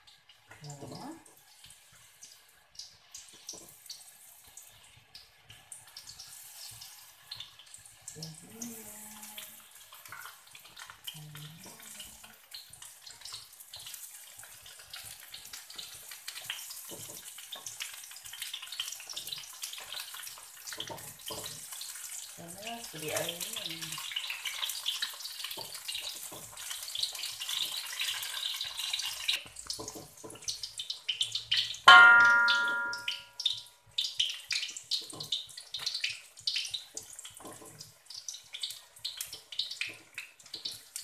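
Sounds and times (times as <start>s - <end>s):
vegetables frying in hot oil: 0.0s - 41.0s.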